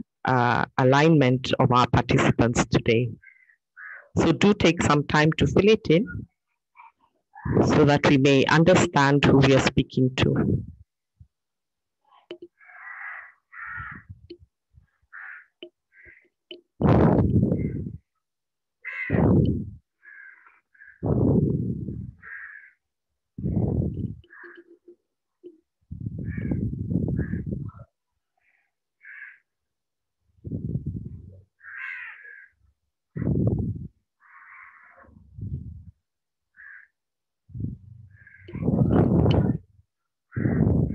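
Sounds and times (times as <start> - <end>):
harsh bird calls: 3.2 - 4.2, 12.5 - 14.2, 14.9 - 16.4, 19.9 - 21.0, 22.1 - 22.8, 24.1 - 24.9, 26.2 - 29.5, 31.6 - 32.6, 34.2 - 35.2, 36.5 - 37.0, 38.0 - 38.8
faint low rumble: 21.0 - 22.2, 30.4 - 31.5, 35.2 - 36.0, 37.5 - 39.8.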